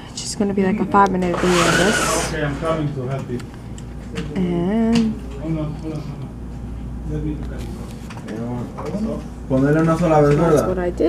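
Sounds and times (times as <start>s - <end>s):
voices talking in a room: 0.0s - 11.0s.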